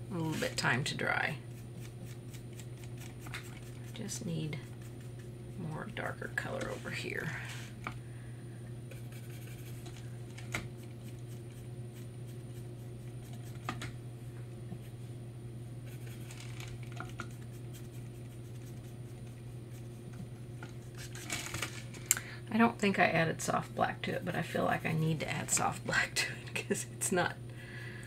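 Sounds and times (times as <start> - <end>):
steady low hum: 0.0 - 28.0
paintbrush scratching on palette: 8.9 - 9.8, 15.8 - 16.4, 17.2 - 20.1, 24.1 - 25.6.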